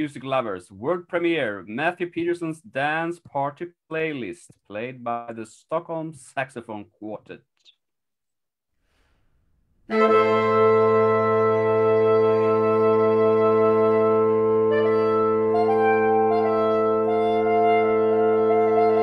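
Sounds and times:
saxophone quartet: 9.9 - 19.0.

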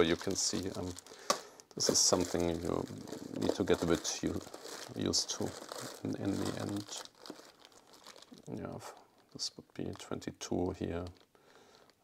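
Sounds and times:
plastic bag crinkling faintly: 0.0 - 12.0.

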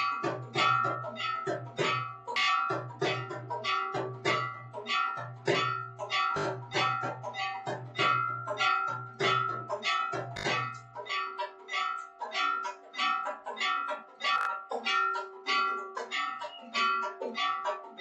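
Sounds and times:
temple bells ringing rapidly: 0.0 - 18.0.

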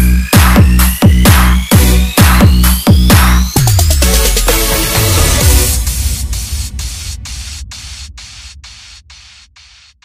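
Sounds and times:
low bass rumble: 5.0 - 9.8
rhythmic white noise bursts: 5.2 - 10.0.

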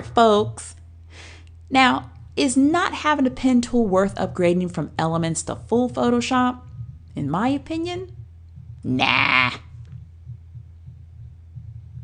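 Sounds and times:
faint low throb: 0.0 - 12.0
low background hum: 0.0 - 12.0.

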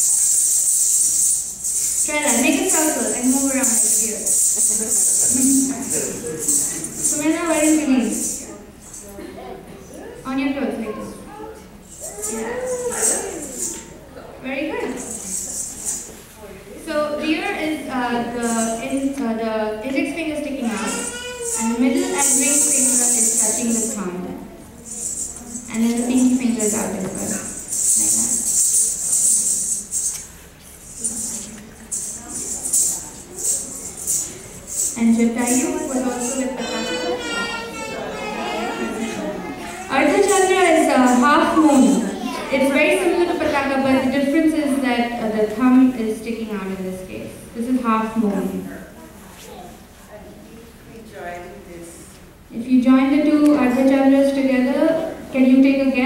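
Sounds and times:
ankle bells jingling: 0.0 - 9.1, 11.8 - 14.0, 14.8 - 16.1, 18.2 - 19.2, 20.6 - 44.0
voice: 2.0 - 13.8, 16.5 - 24.4, 25.4 - 28.4, 35.0 - 56.0.

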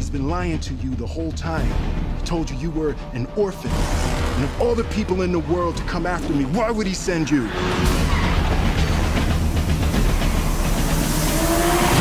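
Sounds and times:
car engine revving hard: 7.4 - 12.0.

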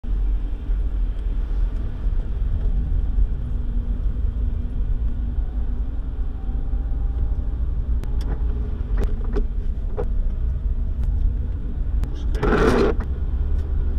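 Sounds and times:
car driving on wet road: 0.1 - 13.9.

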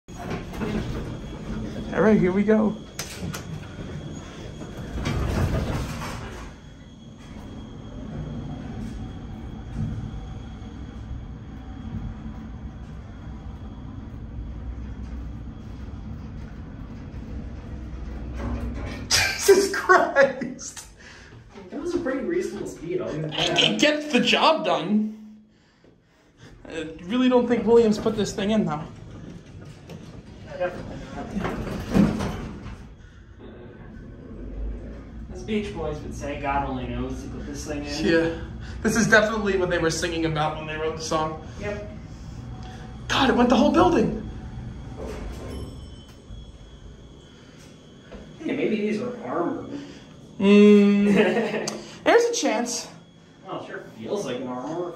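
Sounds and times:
elevator rumble and hum: 0.0 - 54.9.

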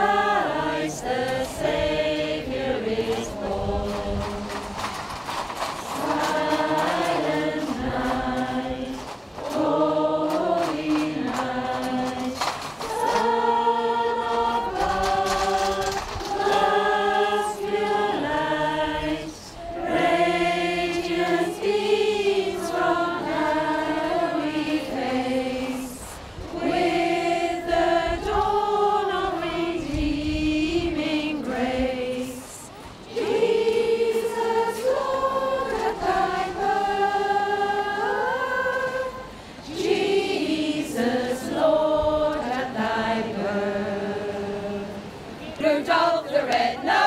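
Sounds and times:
choir singing unaccompanied: 0.0 - 47.0.

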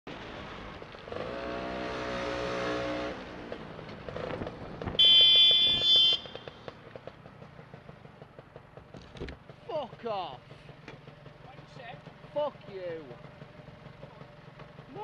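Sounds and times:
scooter engine: 0.1 - 15.0
high-pitched vehicle horn: 5.0 - 6.4.

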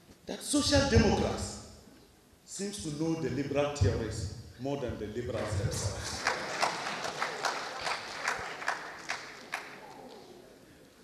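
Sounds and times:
audience applause: 5.8 - 10.4.

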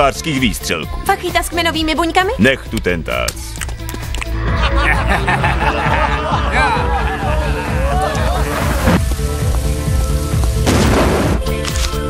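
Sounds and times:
pop song instrumental: 0.0 - 12.0
heavy rain: 7.5 - 11.4.

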